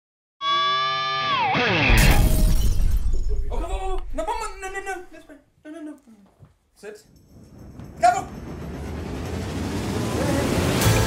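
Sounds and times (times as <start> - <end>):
crash with deep boom: 1.9 - 4.3.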